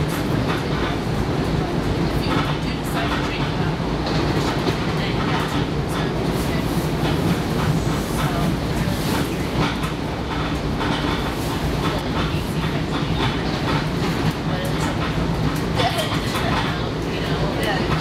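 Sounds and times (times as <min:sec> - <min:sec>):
train wheels rumbling on track: 0:00.0 - 0:18.0.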